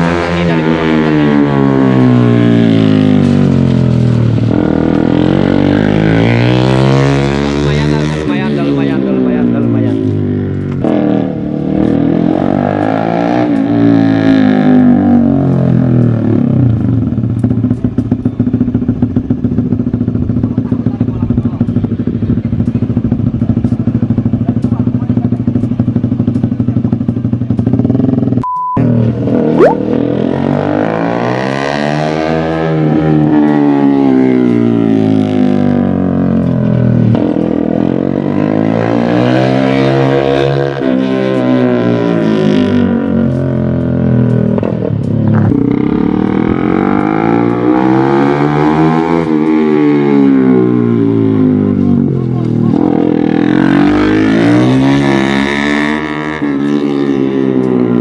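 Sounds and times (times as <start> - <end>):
small motorcycle engine revving: 0.0 - 21.6, 27.5 - 58.0.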